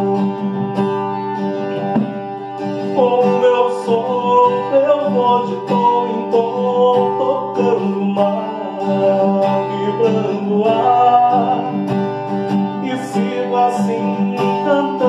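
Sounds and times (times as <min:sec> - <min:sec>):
man singing: 0:00.0 - 0:00.6, 0:02.9 - 0:15.0
acoustic guitar strumming: 0:00.0 - 0:15.0.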